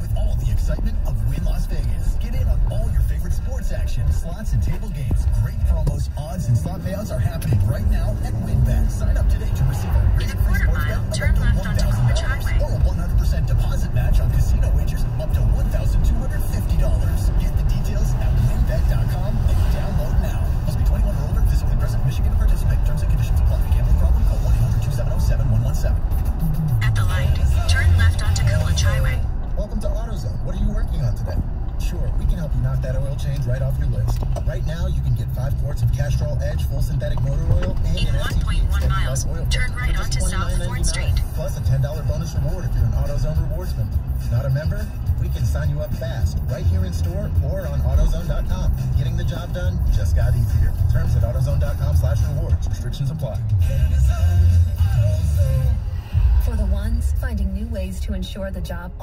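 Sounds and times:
car cabin road rumble: 0.0s - 59.0s
radio commercial voice: 0.0s - 59.0s
radio music: 0.0s - 59.0s.

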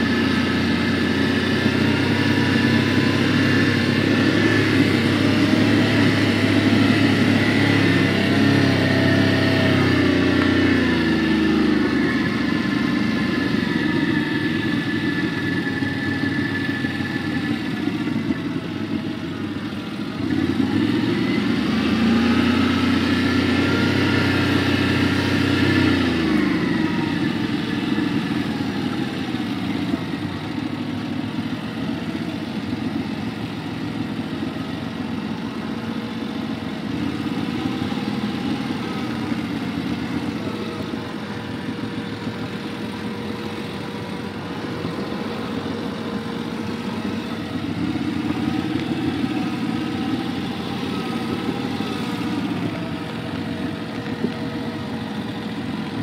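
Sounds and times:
quad bike engines: 0.0s - 56.0s.

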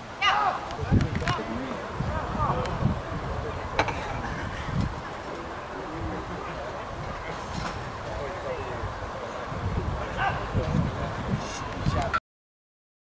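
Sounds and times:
wind rumble on microphone: 0.7s - 12.2s.

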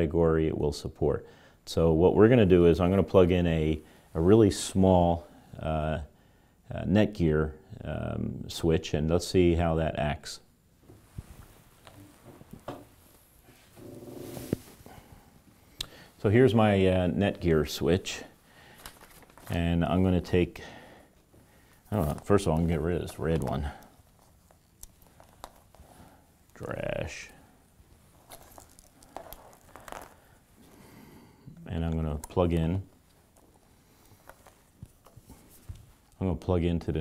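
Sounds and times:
cable rustling: 18.2s - 20.4s, 21.1s - 30.9s, 31.8s - 36.2s.

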